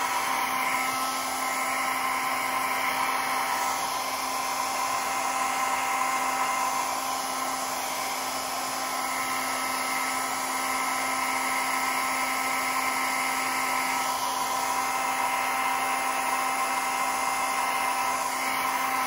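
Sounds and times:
hair dryer running: 0:00.0 - 0:19.0.

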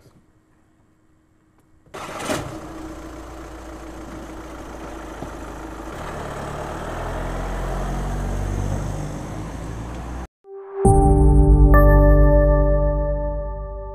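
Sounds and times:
car engine starting and running: 0:01.9 - 0:10.3.

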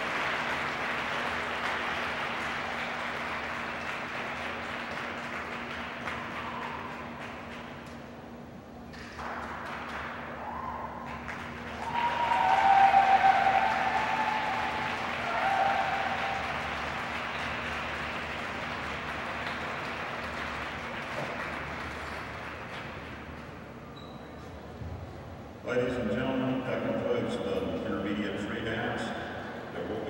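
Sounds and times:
audience applauding: 0:00.0 - 0:07.9, 0:09.1 - 0:23.3
cheering calls: 0:06.1 - 0:07.2, 0:10.3 - 0:18.2.

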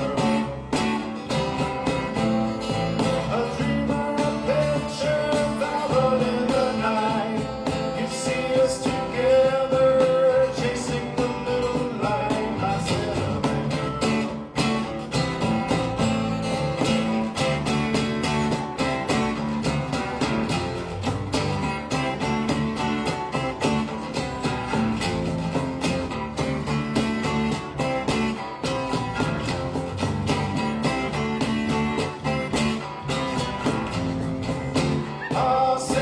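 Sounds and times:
cajon beat: 0:00.0 - 0:36.0
electric bass: 0:00.0 - 0:36.0
strummed acoustic guitars: 0:00.0 - 0:36.0.

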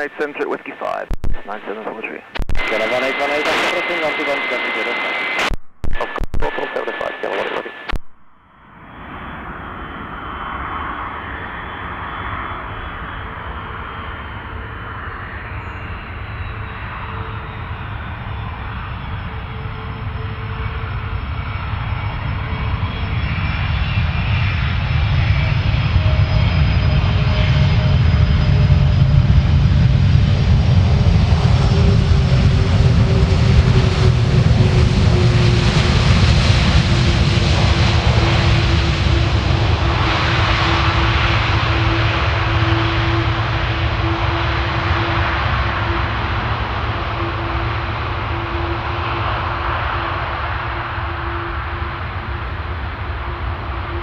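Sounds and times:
jet engines roaring: 0:00.0 - 0:08.0, 0:08.7 - 0:54.0
jet engine whine: 0:00.0 - 0:54.0.

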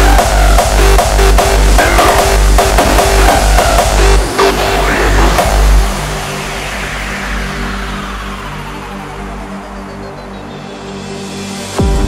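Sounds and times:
hardstyle kick and bass: 0:00.0 - 0:12.0.

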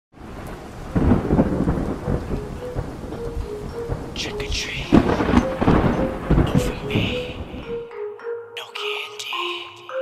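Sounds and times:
steady rain: 0:00.2 - 0:07.7
thunder rumbling: 0:00.2 - 0:07.7.

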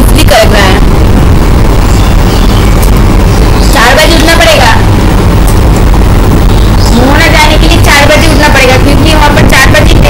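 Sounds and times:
woman speaking: 0:00.0 - 0:00.9, 0:03.7 - 0:04.9, 0:06.9 - 0:10.0
loud low rumble: 0:00.0 - 0:10.0.

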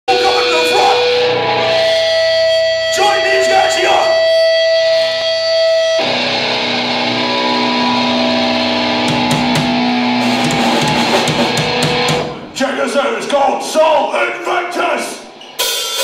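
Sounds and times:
electric guitar ringing: 0:00.1 - 0:12.6.

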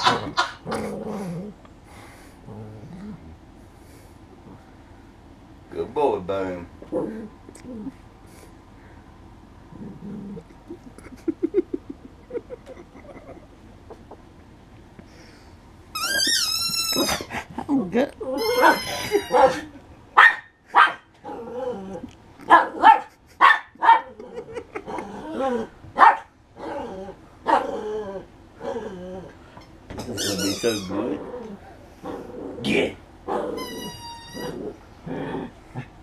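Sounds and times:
dog growling: 0:00.0 - 0:03.4, 0:06.8 - 0:08.0, 0:09.6 - 0:11.6, 0:21.2 - 0:22.9, 0:24.1 - 0:25.8, 0:26.6 - 0:29.4, 0:30.0 - 0:36.0
dog squeaks: 0:16.0 - 0:17.3, 0:18.4 - 0:19.7, 0:30.1 - 0:31.1, 0:33.5 - 0:34.7
small dog barking: 0:18.5 - 0:21.0, 0:22.4 - 0:24.2, 0:26.0 - 0:26.8, 0:27.4 - 0:27.7.

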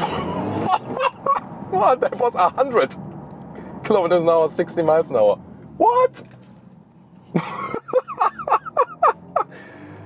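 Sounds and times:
man laughing heartily: 0:00.0 - 0:01.5, 0:07.3 - 0:09.6.

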